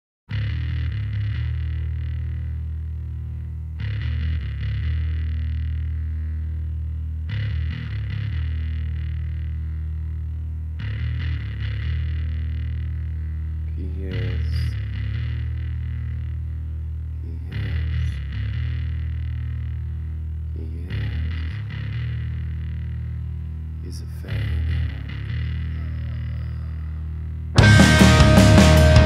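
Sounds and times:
distorted electric guitar riff: 0.3s - 29.0s.

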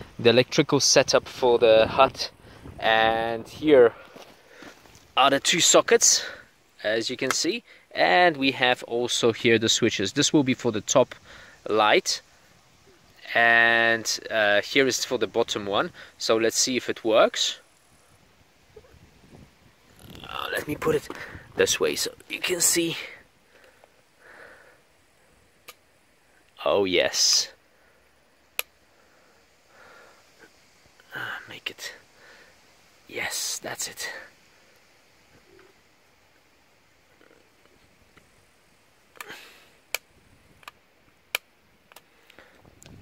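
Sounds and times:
soft rustle: 1.2s - 5.5s.

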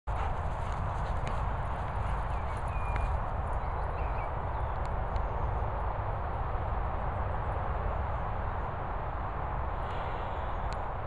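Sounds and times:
running footsteps on grass: 0.1s - 4.3s
wind rumbling on microphone: 0.1s - 11.0s.

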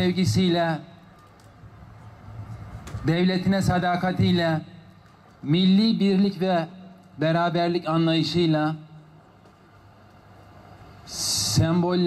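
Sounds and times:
person speaking into a microphone: 0.0s - 0.9s, 3.0s - 4.8s, 5.4s - 8.9s, 11.1s - 12.0s.

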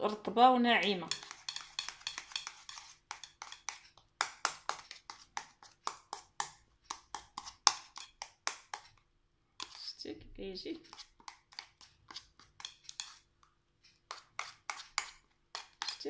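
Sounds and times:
spoon scraping ceramic bowl: 0.8s - 9.0s, 9.6s - 10.0s, 10.8s - 16.0s.

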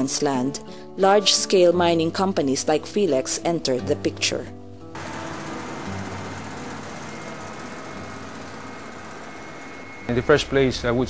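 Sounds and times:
bulldozer engine running: 4.9s - 10.5s.

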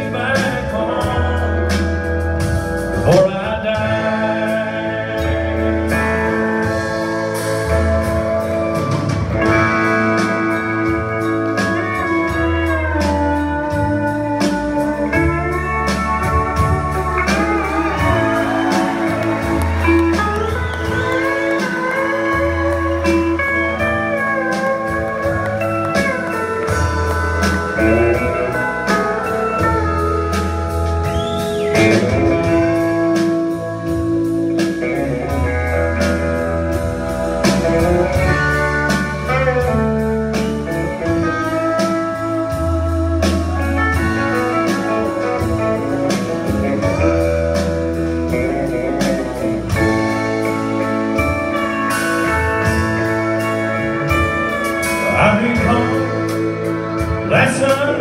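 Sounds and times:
bass guitar: 0.0s - 58.0s
drums: 0.0s - 58.0s
electric guitar: 0.0s - 58.0s
pedal steel guitar: 0.0s - 58.0s.

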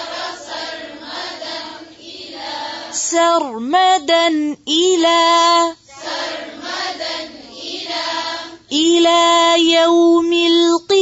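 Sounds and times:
melodic chanted recitation: 0.0s - 11.0s.

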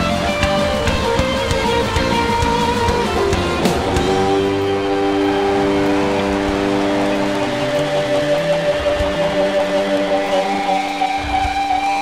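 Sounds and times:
rock band sustained chord: 0.0s - 12.0s.

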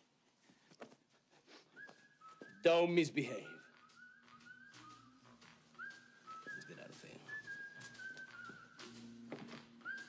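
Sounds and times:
faint whistled tune: 1.5s - 10.0s.

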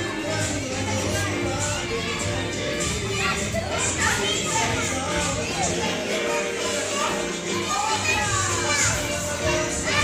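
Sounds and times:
background music: 0.0s - 10.0s
children playing and calling out: 0.0s - 10.0s.

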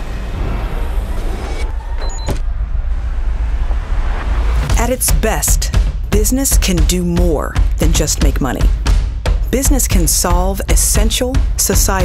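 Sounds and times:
noisy rush: 0.0s - 6.0s
deep low rumble: 0.0s - 6.5s.

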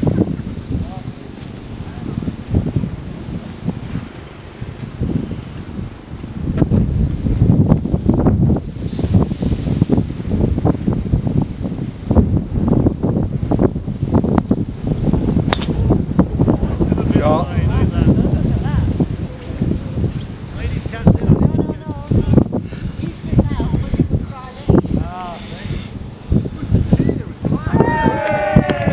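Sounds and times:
wind buffeting microphone: 0.0s - 28.9s
golf driver striking ball: 15.5s - 16.1s.

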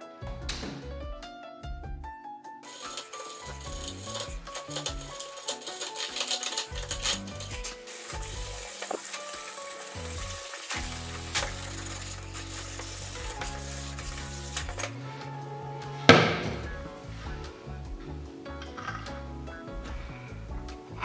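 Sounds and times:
background music: 0.0s - 21.0s
sandpaper rubbing wood: 2.7s - 15.0s
blade scraping wood: 2.7s - 15.1s.

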